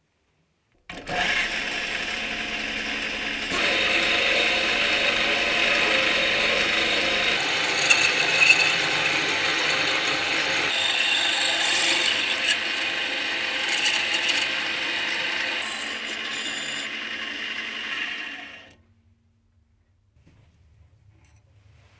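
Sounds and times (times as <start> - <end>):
lathe drill cutting metal: 0.9 - 18.8
metal chips scraping: 4.7 - 12.6.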